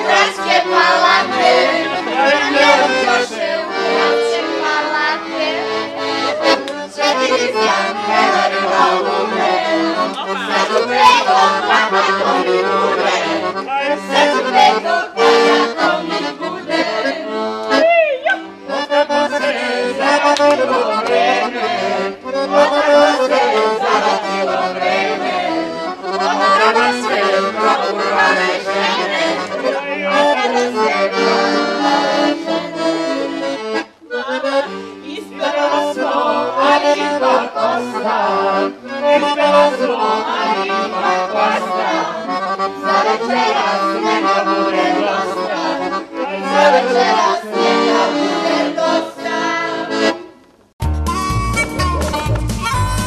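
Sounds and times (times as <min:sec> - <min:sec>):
group singing: 0:00.0 - 0:17.8, 0:18.7 - 0:50.3
accordion playing folk tune: 0:00.0 - 0:53.0.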